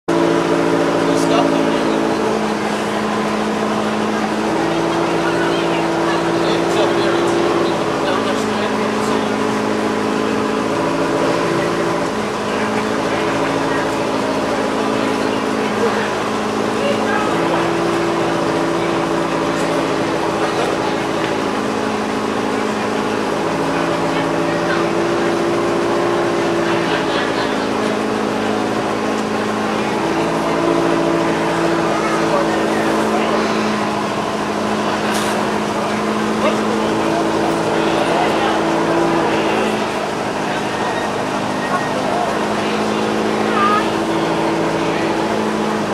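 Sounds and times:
rally car engine running: 0.0s - 45.9s.

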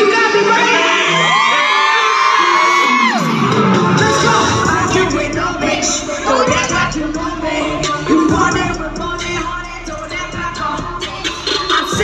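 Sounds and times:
crowd whooping and screaming: 0.0s - 5.4s
hip-hop concert music: 0.0s - 12.0s.

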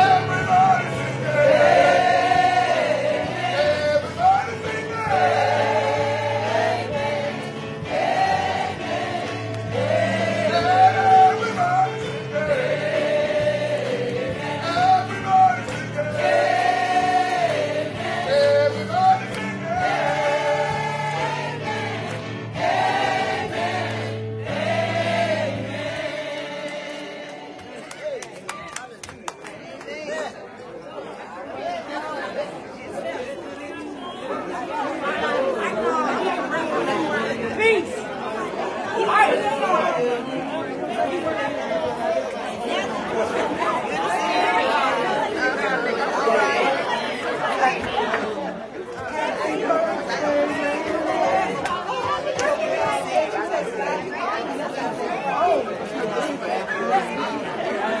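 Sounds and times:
crowd of people talking: 0.0s - 58.0s.

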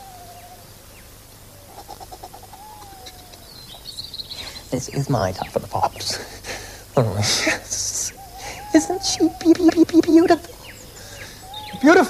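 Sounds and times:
high bird trill: 0.0s - 6.3s, 7.0s - 12.0s
clicking bird chirps: 2.8s - 4.6s.

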